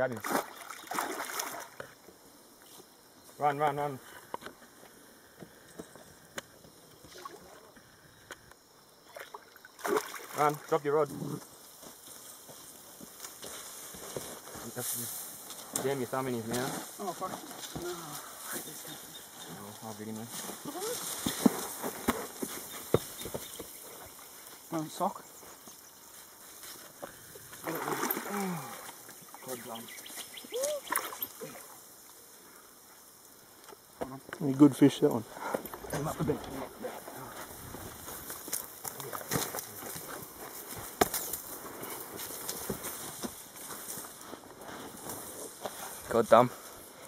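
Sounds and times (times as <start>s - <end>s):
water sloshing: 0.1s - 1.9s, 9.0s - 10.6s, 27.6s - 29.4s.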